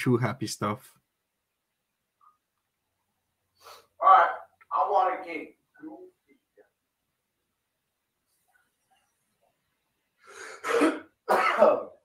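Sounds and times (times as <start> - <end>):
man coughing: 10.5 - 12.0.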